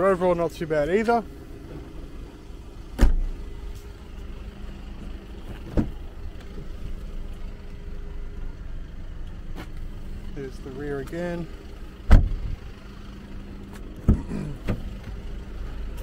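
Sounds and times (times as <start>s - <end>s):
car tailgate shutting thud: 3.0s - 3.4s, 5.4s - 6.0s, 12.1s - 12.5s, 14.0s - 14.9s.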